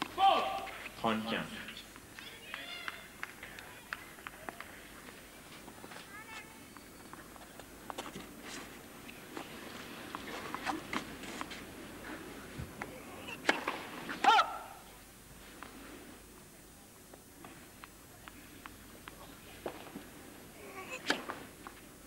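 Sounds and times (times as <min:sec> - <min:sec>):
faint voices: 0:00.0 - 0:11.0, 0:11.8 - 0:22.0
crowd murmur: 0:01.5 - 0:07.8, 0:08.4 - 0:22.0.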